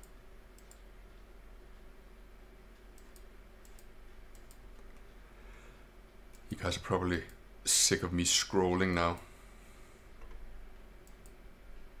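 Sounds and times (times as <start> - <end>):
computer mouse clicks: 0.0 - 0.9, 2.8 - 5.0, 11.0 - 11.4
low room hum: 0.0 - 12.0.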